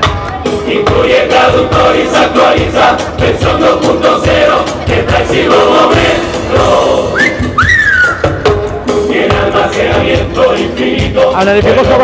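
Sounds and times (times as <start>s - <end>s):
steady drum beat: 0.0s - 12.0s
chorus singing: 0.4s - 12.0s
rising and falling whistle: 7.1s - 8.5s.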